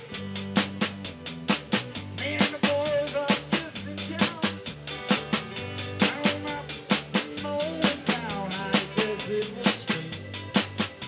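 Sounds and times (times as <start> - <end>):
accordion: 0.0 - 11.0
drum-kit beat: 0.0 - 11.0
electric guitars: 0.0 - 11.0.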